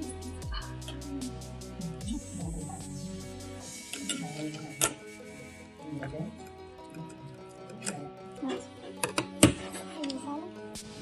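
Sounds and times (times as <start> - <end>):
electronic music: 0.0 - 5.8.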